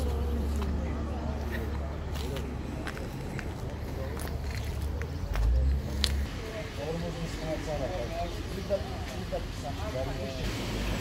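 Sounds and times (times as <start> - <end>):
people talking in the street: 0.0 - 11.0.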